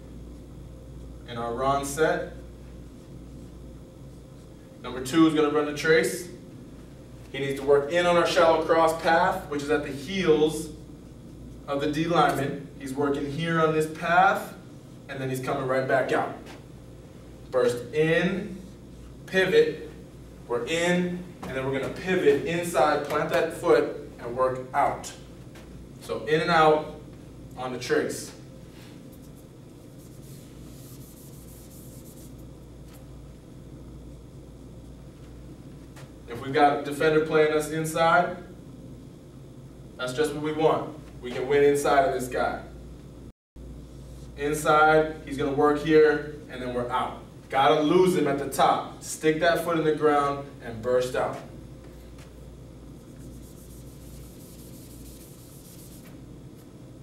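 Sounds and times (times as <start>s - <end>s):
steady low hum: 0.0s - 57.0s
marker scratching on whiteboard: 29.2s - 32.4s, 53.0s - 56.2s.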